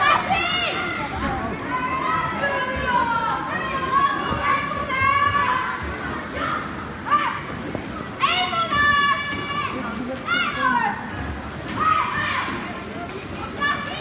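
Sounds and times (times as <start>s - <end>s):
children shouting and cheering: 0.0s - 7.5s, 11.7s - 12.6s.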